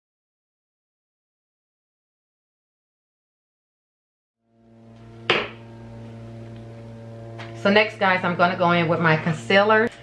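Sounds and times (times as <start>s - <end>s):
steady low hum: 4.5s - 10.0s.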